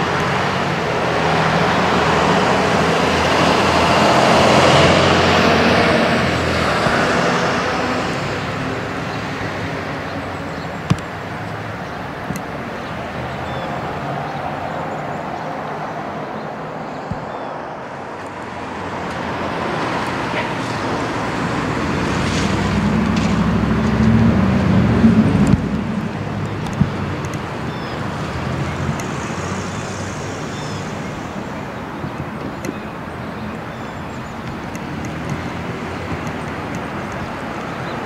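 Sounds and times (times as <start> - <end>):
background traffic: 0.0 - 38.0
vehicle passing: 0.0 - 38.0.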